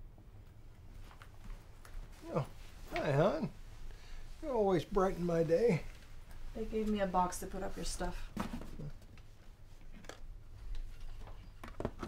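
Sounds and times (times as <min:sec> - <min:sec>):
man saying oh: 0:02.2 - 0:03.5.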